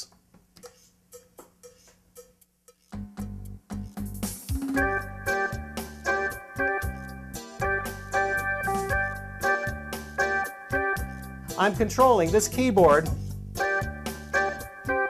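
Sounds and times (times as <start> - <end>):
drum and bass pattern: 0.6 - 14.8
held keyboard chords: 3.2 - 15.0.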